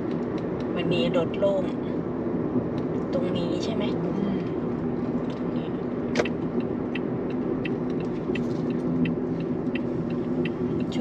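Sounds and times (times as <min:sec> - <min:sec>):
car engine and tyre hum: 0:00.0 - 0:11.0
light ticks: 0:06.2 - 0:11.0.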